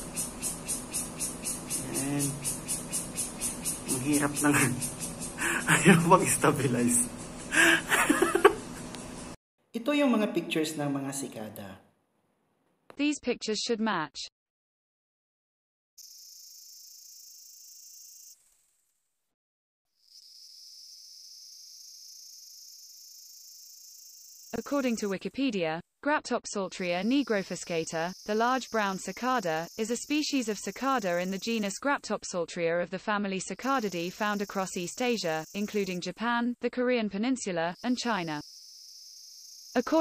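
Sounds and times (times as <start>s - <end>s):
cicadas buzzing: 0.0s - 9.4s, 16.0s - 18.4s, 20.0s - 25.6s, 26.7s - 32.0s, 33.5s - 36.3s, 37.3s - 40.0s.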